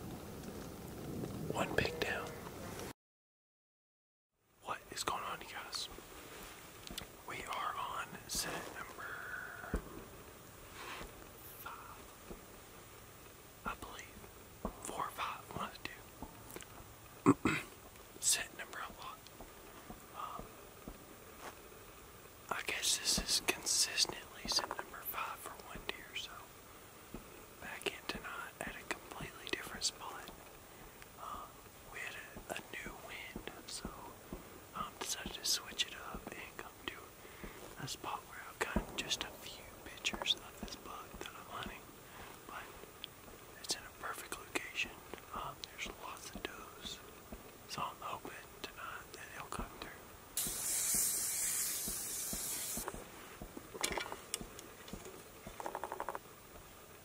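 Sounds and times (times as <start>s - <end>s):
steady hiss: 0.0s - 2.9s, 4.4s - 57.0s
man whispering: 1.5s - 2.4s, 4.6s - 6.0s, 6.9s - 9.9s, 11.4s - 12.1s, 13.6s - 16.1s, 17.3s - 19.3s, 20.1s - 20.6s, 22.5s - 26.5s, 27.6s - 30.4s, 31.2s - 42.8s, 43.6s - 47.1s, 47.7s - 50.0s.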